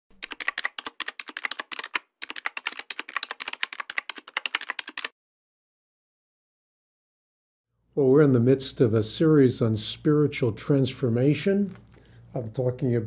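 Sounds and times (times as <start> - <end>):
rapid keyboard typing: 0.1 - 5.1.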